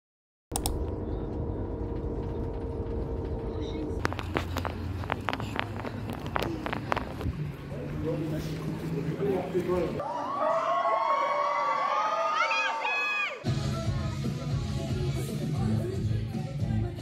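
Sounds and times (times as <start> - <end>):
steady low rumble: 0.5 - 10.0.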